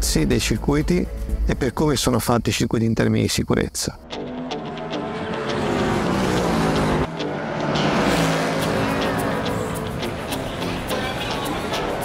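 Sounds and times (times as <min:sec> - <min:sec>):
race car engine at speed: 0:04.0 - 0:12.0.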